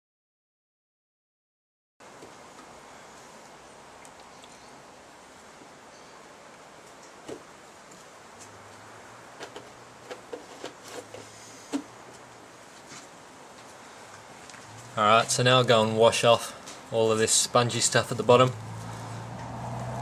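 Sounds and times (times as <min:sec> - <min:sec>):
background hiss: 0:02.0 - 0:20.0.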